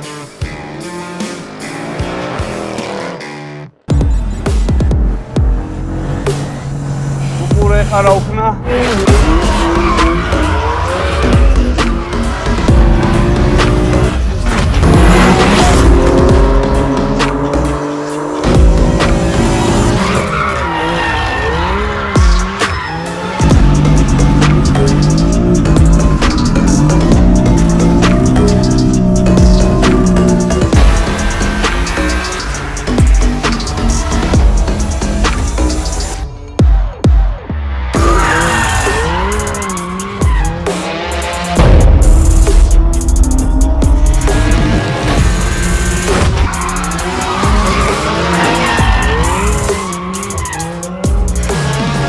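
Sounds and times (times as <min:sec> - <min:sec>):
car tyres squealing: 0:05.8 - 0:17.4, 0:18.3 - 0:36.2, 0:37.8 - 0:41.6, 0:44.1 - 0:52.0
loud music with steady beat: 0:09.0 - 0:20.1, 0:22.2 - 0:52.0
tyres squealing: 0:45.4 - 0:52.0.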